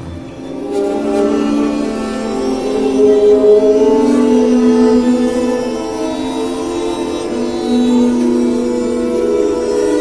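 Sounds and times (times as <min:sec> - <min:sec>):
bowed string ensemble chord: 0:00.0 - 0:10.0.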